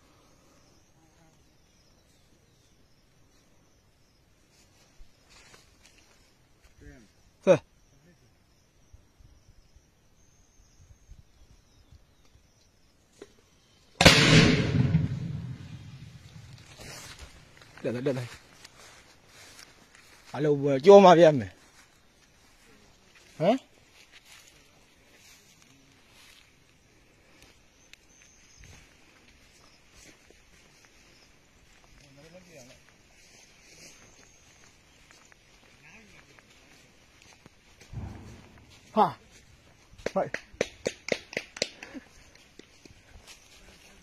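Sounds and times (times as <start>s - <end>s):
loud explosion: 14.0s - 16.6s, 37.9s - 38.9s.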